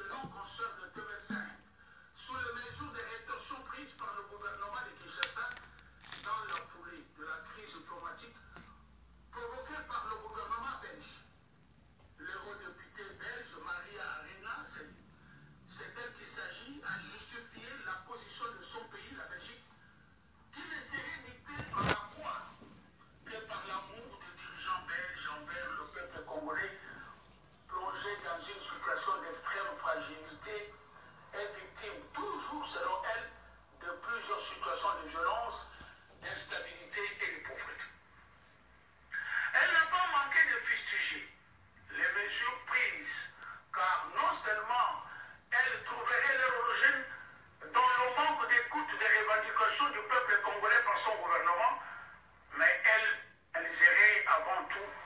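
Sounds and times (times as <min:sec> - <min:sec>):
man speaking through tv speaker: 0:00.0 - 0:11.4, 0:12.2 - 0:19.8, 0:20.5 - 0:38.0, 0:39.1 - 0:55.0.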